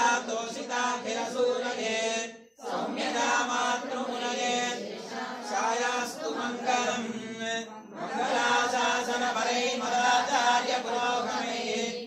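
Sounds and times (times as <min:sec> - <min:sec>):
person chanting mantras: 0:00.0 - 0:12.0.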